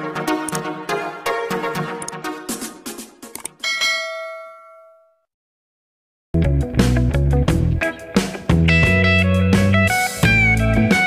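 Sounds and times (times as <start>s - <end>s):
bell-like chime ding: 3.6s - 5.2s.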